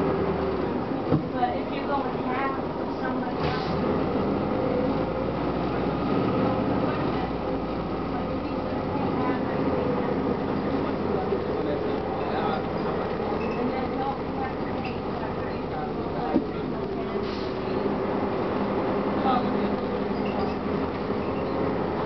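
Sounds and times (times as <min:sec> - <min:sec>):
bus engine running: 0:00.0 - 0:22.0
road and body noise: 0:00.0 - 0:22.0.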